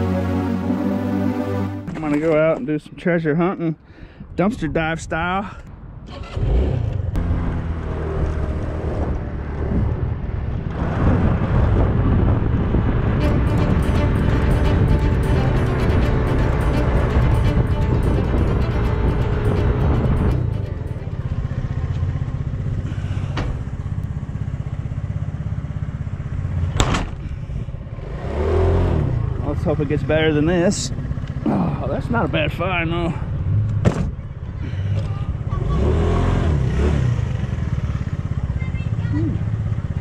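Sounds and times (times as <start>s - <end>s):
small motorcycle engine running: 37.2s - 40.0s.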